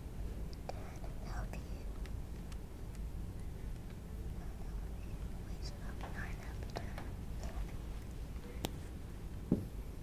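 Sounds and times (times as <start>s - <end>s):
person whispering: 0.6s - 2.0s, 4.4s - 7.8s.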